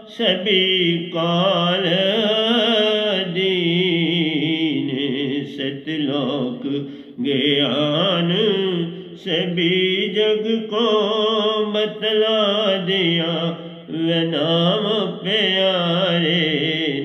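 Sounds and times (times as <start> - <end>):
man singing devotional song: 0.0 - 17.0.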